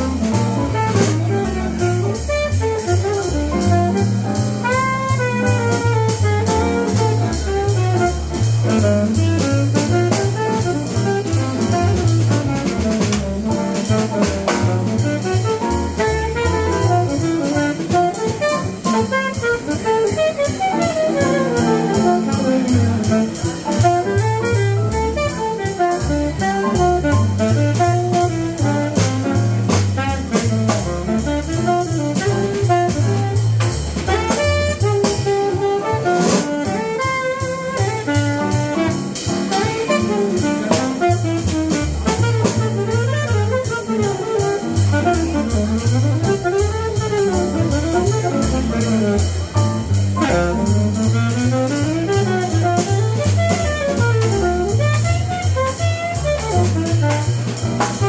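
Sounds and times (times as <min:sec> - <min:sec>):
double bass: 0:00.0 - 0:58.0
drum kit played with sticks: 0:00.0 - 0:58.0
saxophone improvising: 0:14.2 - 0:29.3, 0:34.1 - 0:57.8.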